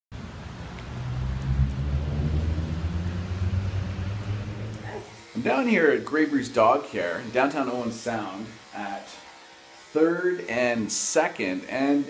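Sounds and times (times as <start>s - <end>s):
vehicle engine rumbling: 0.1s - 5.1s.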